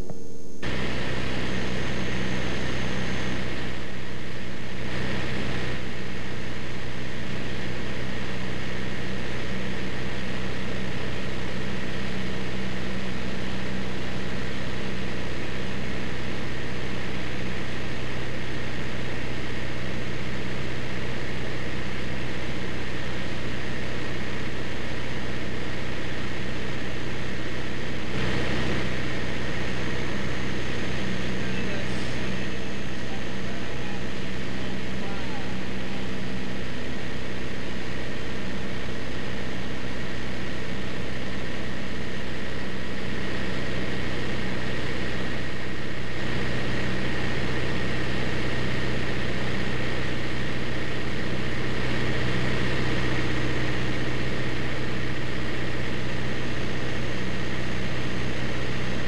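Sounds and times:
light aircraft engine and propeller: 0.0 - 59.0.

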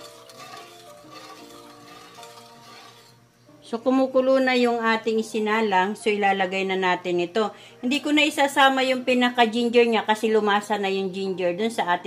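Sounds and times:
spatula stirring in a metal wok: 0.0 - 3.2
soft background music: 0.0 - 12.0.

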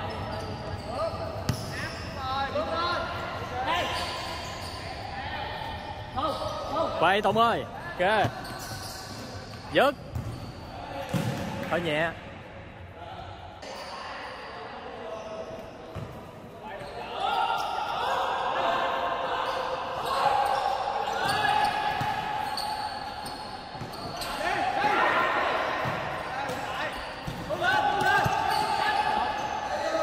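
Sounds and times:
players calling out: 16.6 - 30.0.

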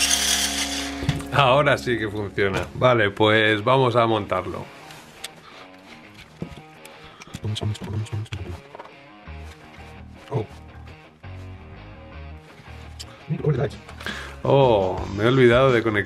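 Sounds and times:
background music with bass line: 0.0 - 16.0.

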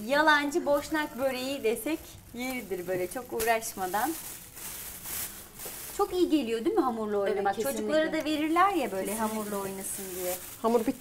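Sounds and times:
plastic bag crinkling: 0.0 - 6.8, 8.2 - 11.0.

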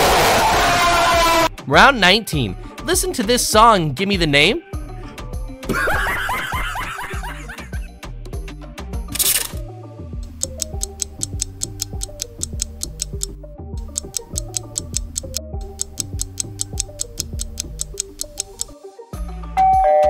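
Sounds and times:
countdown timer music: 10.3 - 18.8.

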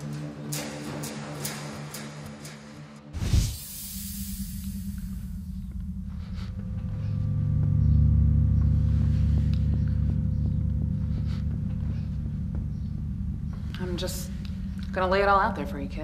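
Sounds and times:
low rumbling drone: 3.0 - 16.0.

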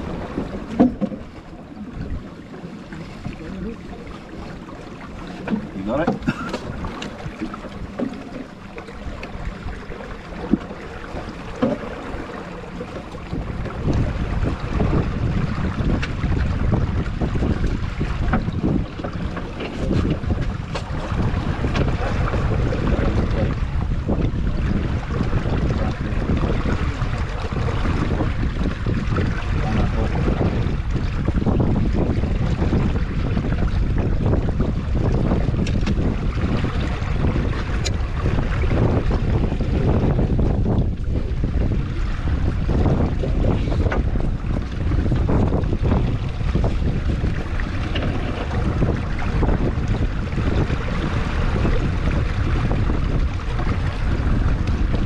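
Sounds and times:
water slapping along hull: 0.0 - 55.0
wind buffeting microphone: 0.0 - 55.0.

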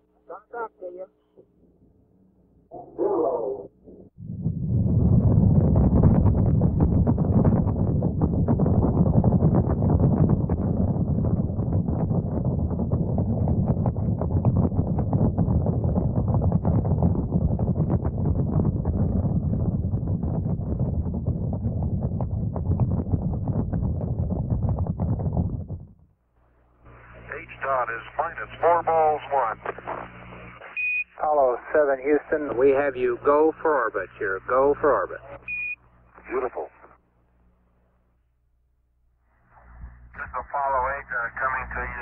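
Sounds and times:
rocket engines rumbling: 26.9 - 30.5.

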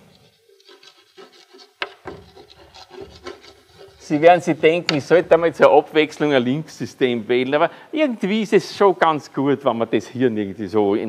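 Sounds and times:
chalk scratching on chalkboard: 0.0 - 5.5
chalk tapping on board: 0.6 - 5.2.

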